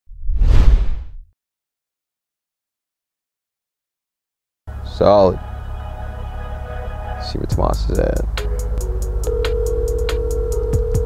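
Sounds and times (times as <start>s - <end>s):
intro whoosh: 0.1s - 1.2s.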